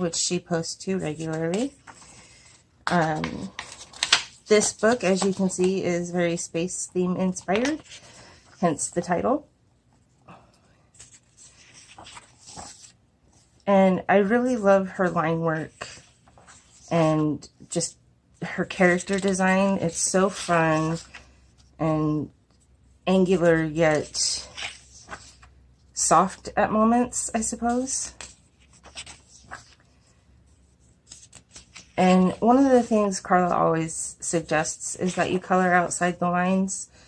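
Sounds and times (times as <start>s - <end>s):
paper page turning: 2.8s - 5.7s, 10.9s - 13.4s, 15.7s - 16.9s, 18.9s - 19.5s, 24.4s - 25.5s, 27.7s - 29.9s, 30.8s - 32.0s.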